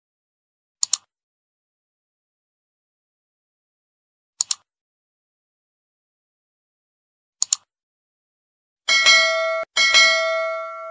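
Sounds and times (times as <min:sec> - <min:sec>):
notification bell ding: 0:08.9 - 0:10.9.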